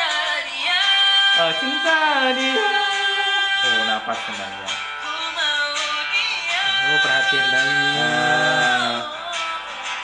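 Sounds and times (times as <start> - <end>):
young man singing pop ballad: 0.0 - 10.0.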